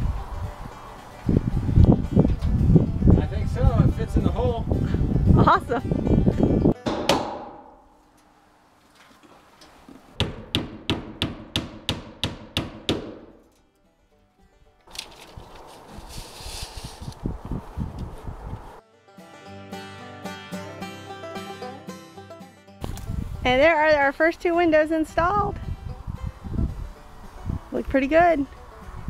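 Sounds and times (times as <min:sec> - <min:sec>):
background music with held notes: 0:00.0 - 0:07.3, 0:18.8 - 0:29.0
hammer driving nails: 0:06.8 - 0:07.8, 0:10.2 - 0:13.4.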